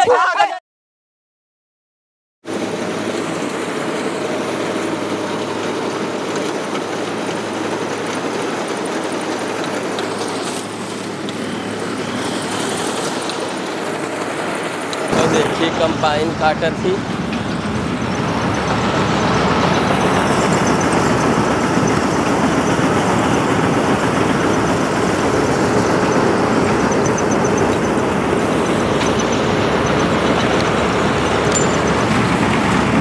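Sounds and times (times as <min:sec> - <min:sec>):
combine harvester engine and threshing: 0:02.5 - 0:33.0.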